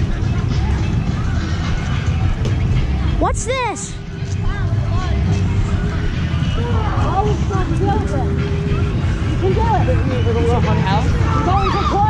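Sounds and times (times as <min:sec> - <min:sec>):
people talking indistinctly: 0:00.0 - 0:12.0
steady low rumble: 0:00.0 - 0:12.0.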